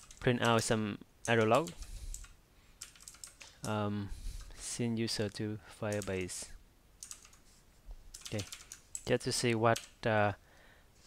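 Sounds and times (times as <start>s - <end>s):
typing on keyboard: 0.0s - 0.6s, 1.3s - 3.8s, 5.9s - 6.2s, 7.0s - 7.4s, 8.1s - 10.0s.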